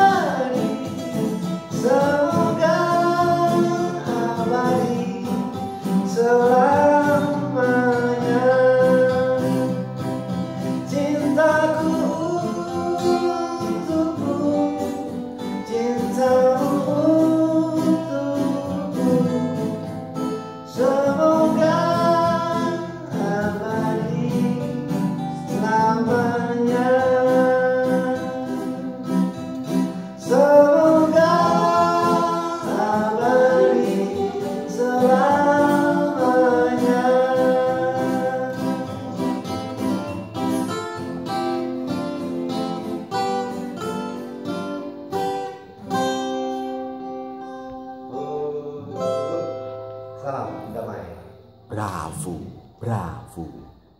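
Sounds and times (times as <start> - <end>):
men singing in harmony: 0.0 - 1.0, 1.7 - 9.9, 10.9 - 19.4, 20.7 - 29.2, 30.0 - 39.5
acoustic guitars: 0.0 - 53.9
man singing held notes: 30.2 - 39.3, 51.7 - 53.8.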